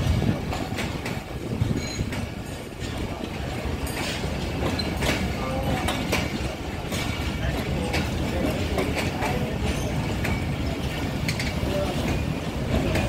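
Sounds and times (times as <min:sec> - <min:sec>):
train coaches rumbling on track: 0:00.0 - 0:13.0
wheel clicks over rail joints: 0:00.0 - 0:13.0.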